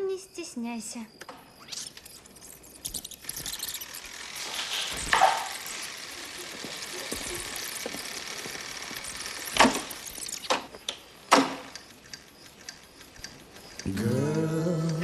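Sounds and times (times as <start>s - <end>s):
tape spooling whirring hiss: 0.0s - 15.0s.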